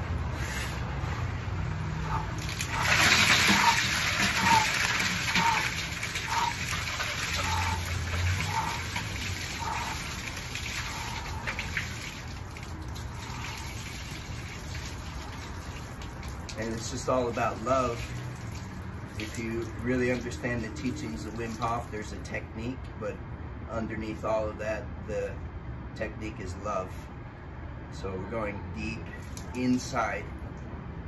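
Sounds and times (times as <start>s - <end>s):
water sloshing in plastic drum: 2.0s - 22.0s.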